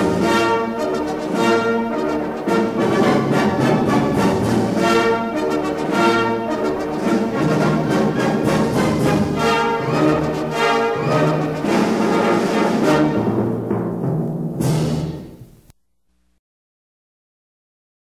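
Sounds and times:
orchestral music with brass: 0:00.0 - 0:15.4
timpani: 0:00.0 - 0:15.7.

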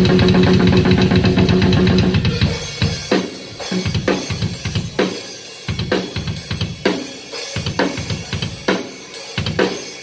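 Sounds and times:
rock drum kit fast strokes: 0:00.0 - 0:10.0.

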